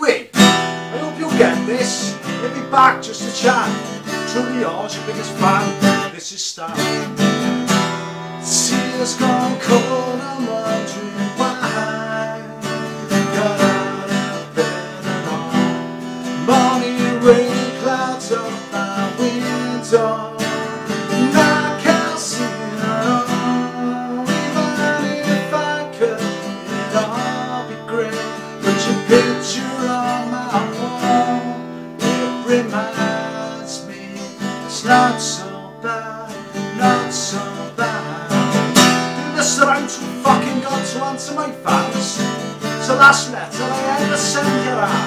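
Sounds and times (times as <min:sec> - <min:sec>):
man singing: 0:00.0 - 0:07.2, 0:08.4 - 0:45.0
acoustic guitar strumming: 0:00.0 - 0:45.0.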